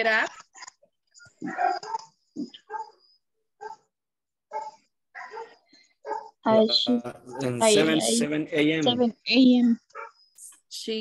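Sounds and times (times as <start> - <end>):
faint dog barking: 1.4 - 3.0, 3.6 - 3.9, 4.5 - 6.5, 7.1 - 8.2, 9.9 - 10.3.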